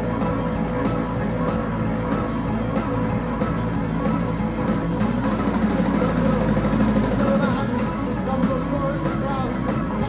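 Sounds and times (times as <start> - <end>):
rock band playing droning passage: 0.0 - 10.0.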